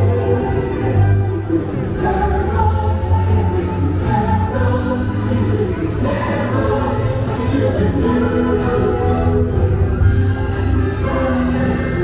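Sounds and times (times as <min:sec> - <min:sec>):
chorus singing with orchestra: 0:00.0 - 0:12.0.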